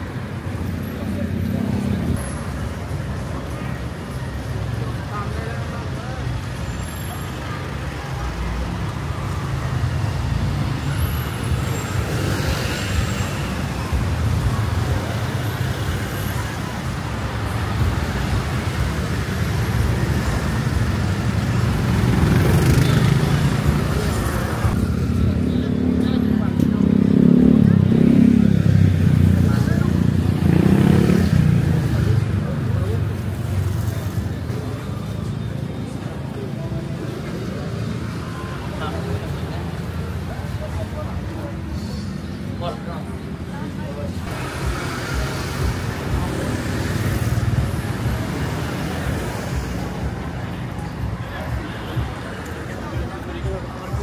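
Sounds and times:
people's voices: 0.0 - 54.0
vehicles passing: 0.0 - 54.0.

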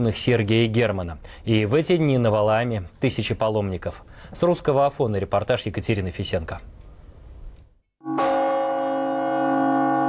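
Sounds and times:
large church bell ringing: 8.0 - 10.0.

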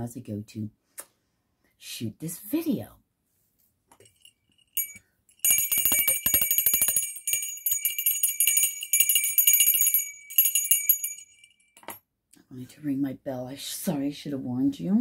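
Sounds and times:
hand bell ringing: 4.0 - 12.0.

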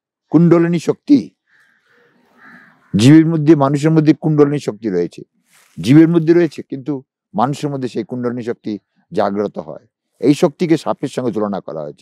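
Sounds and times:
man speaking: 0.3 - 1.3, 3.0 - 12.0
faint bird calling: 1.4 - 3.2.

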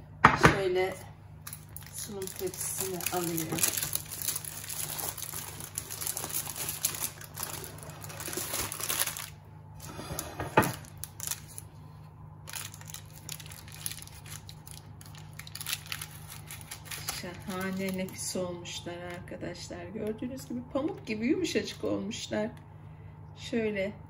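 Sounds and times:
baking paper crinkling: 1.4 - 19.4.

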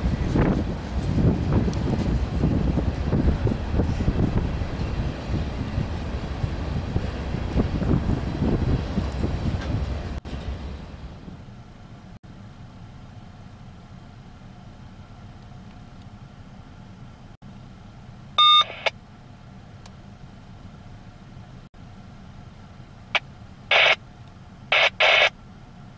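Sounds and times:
freight train rumbling: 0.0 - 24.8
loud electronic beep: 18.4 - 18.9, 23.7 - 24.0, 24.7 - 25.3.

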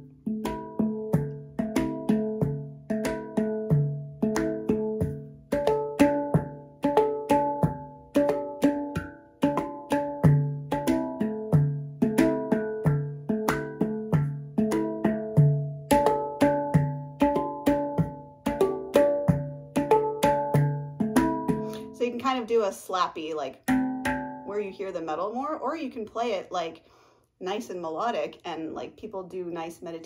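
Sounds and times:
handpan played with fingertips: 0.0 - 22.0, 23.7 - 24.5.

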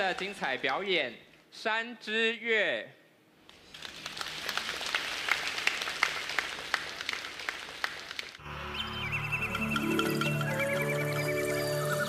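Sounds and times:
audience applauding: 3.5 - 12.0.

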